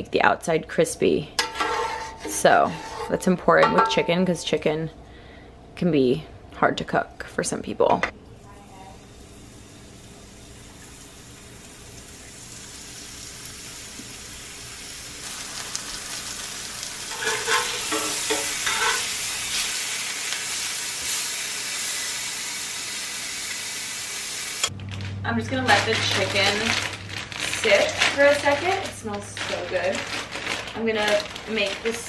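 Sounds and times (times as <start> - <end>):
chicken sizzling in oil: 9.0 - 24.7.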